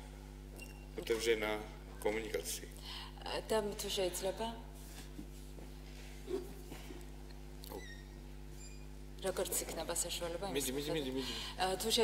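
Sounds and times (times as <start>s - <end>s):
low electrical hum: 0.0s - 12.0s
faint high squeaks: 7.7s - 8.9s.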